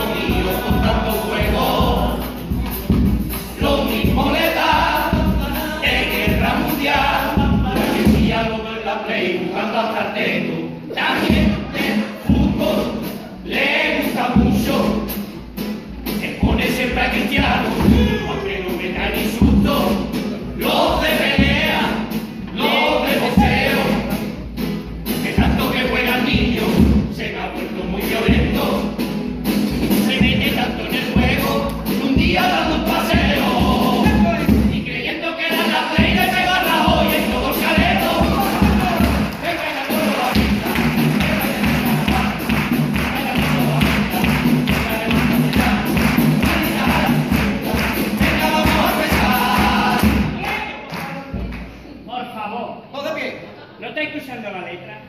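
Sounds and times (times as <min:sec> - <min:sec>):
men singing in chorus: 0:00.0 - 0:02.3, 0:03.5 - 0:15.1, 0:16.2 - 0:24.1, 0:30.1 - 0:50.4
bass drum beats: 0:00.0 - 0:08.6, 0:11.1 - 0:35.0, 0:36.0 - 0:50.5
guitars: 0:00.0 - 0:50.4
snare drum strokes: 0:35.5 - 0:50.6.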